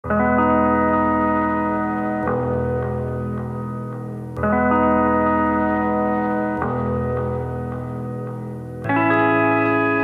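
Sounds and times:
sustained music chords: 0.1 - 10.0.

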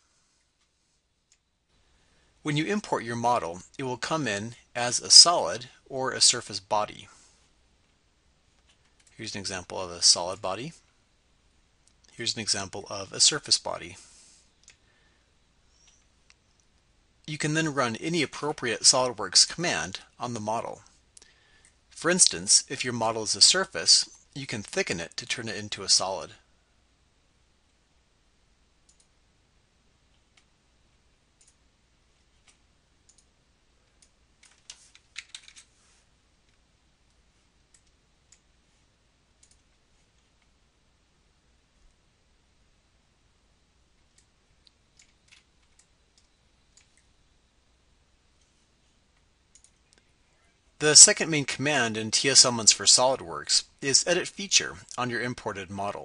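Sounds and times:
computer mouse clicks: 28.9 - 29.1, 39.4 - 39.8, 44.1 - 47.1, 49.2 - 50.1
computer keyboard typing: 34.0 - 35.7, 45.0 - 47.1.

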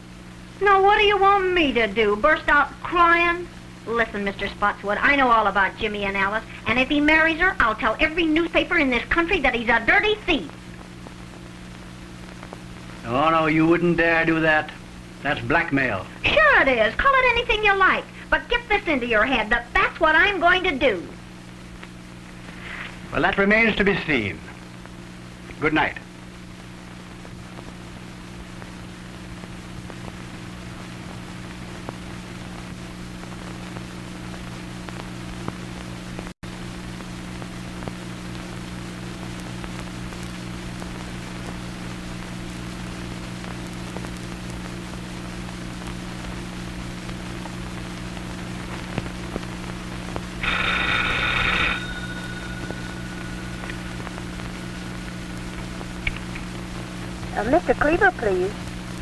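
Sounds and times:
film soundtrack hiss and hum: 0.0 - 59.0
telephone bell ringing: 50.4 - 55.0.

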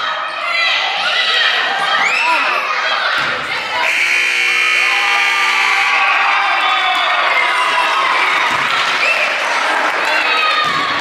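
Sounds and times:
crowd cheering and shouting: 0.0 - 11.0
scoreboard buzzer: 3.8 - 6.3.

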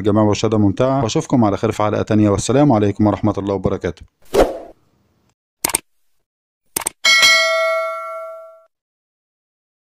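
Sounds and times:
notification bell ding: 7.1 - 8.7.

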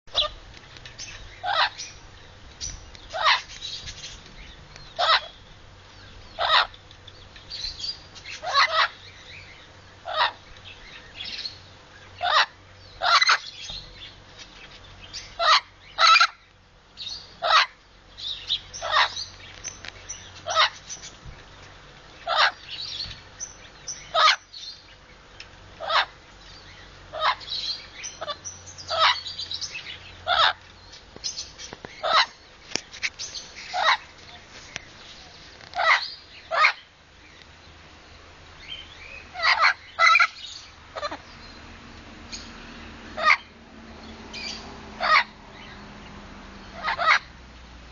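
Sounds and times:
parrot squawking: 0.1 - 0.4, 1.4 - 2.0, 3.1 - 3.5, 5.0 - 5.4, 6.4 - 6.8, 8.3 - 9.0, 10.0 - 10.4, 12.2 - 13.5, 15.3 - 16.4, 17.4 - 17.8, 18.8 - 19.3, 20.4 - 20.9, 22.2 - 22.7, 24.1 - 24.5, 25.8 - 26.2, 27.1 - 29.3, 30.2 - 30.6, 32.0 - 32.4, 33.6 - 34.1, 35.7 - 36.9, 39.3 - 41.2, 43.2 - 43.6, 45.0 - 45.4, 46.7 - 47.3.

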